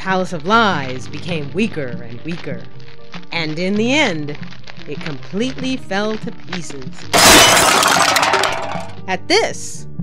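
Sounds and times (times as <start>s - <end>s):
background music: 0.0s - 10.0s
debris clattering: 7.1s - 9.0s
structure crashing and shattering: 7.1s - 9.0s.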